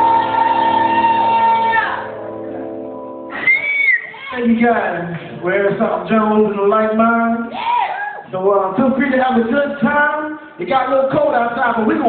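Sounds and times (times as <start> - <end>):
person whooping: 0.0 - 2.1, 3.3 - 4.4, 7.5 - 8.2
live band chord ringing: 0.0 - 3.6.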